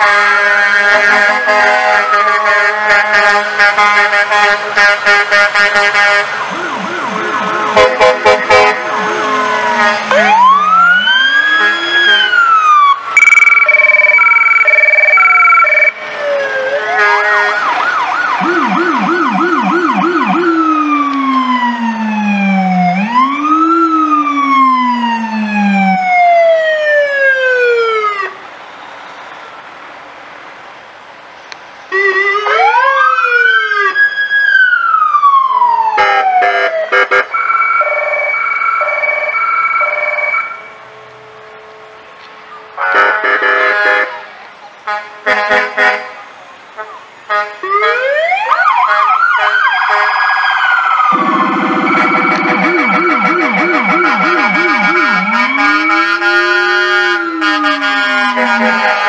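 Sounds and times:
pulsing two-tone horn: 0.0s - 10.9s, 51.1s - 59.0s
emergency vehicle sirens wailing: 0.0s - 59.0s.

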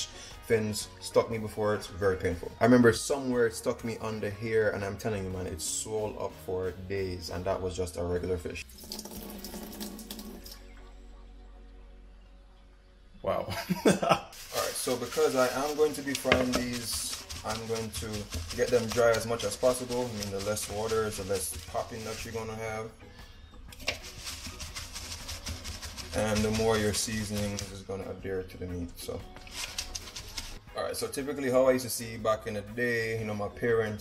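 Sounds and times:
water pouring into metal sink: 8.6s - 10.6s
paper towel rubbing and patting: 14.3s - 22.6s, 23.8s - 27.8s, 29.4s - 30.6s.

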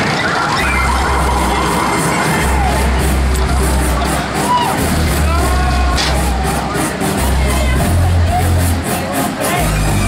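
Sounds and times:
loud music with heavy bass: 0.0s - 10.0s
riders shouting and cheering: 0.0s - 10.0s.

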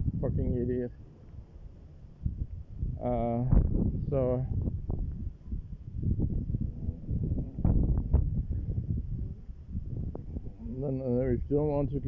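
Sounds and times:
wind buffeting microphone: 0.0s - 0.9s, 2.2s - 12.0s.

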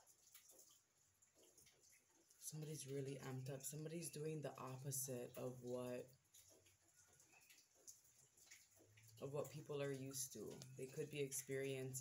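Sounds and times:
soft ticks: 5.5s - 11.8s.

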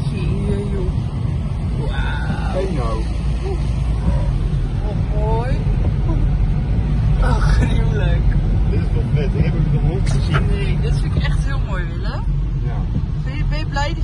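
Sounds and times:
car road and engine rumble: 0.0s - 14.0s.

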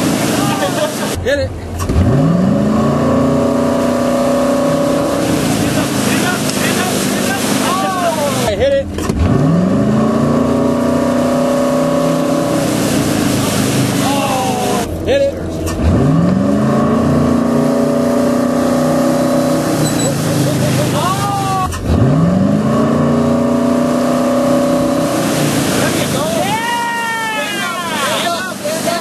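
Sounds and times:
boat engine revving: 0.0s - 29.0s
water rushing: 0.0s - 29.0s.

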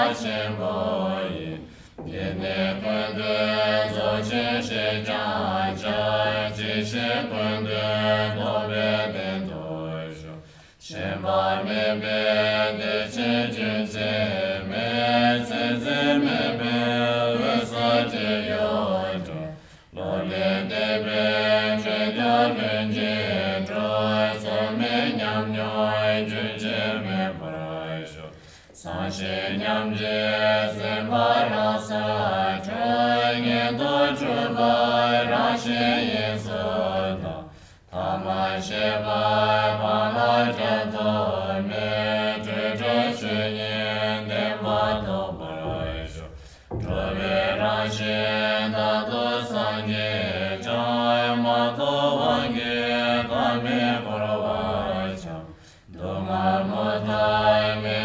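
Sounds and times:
deep slow prayer chanting: 0.0s - 58.0s.

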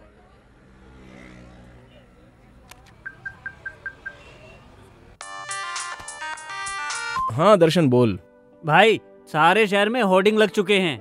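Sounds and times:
phone keypad beep: 3.0s - 4.5s
mobile phone ringtone: 3.0s - 4.6s, 5.2s - 7.4s.

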